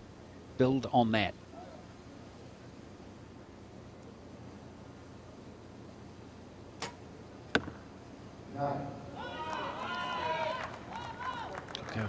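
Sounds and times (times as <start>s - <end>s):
arrow smacking target: 6.8s - 7.8s.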